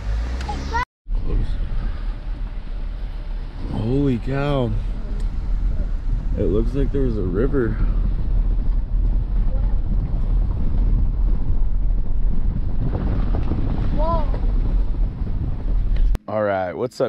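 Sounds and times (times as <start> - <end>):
wind buffeting microphone: 1.2 - 16.2.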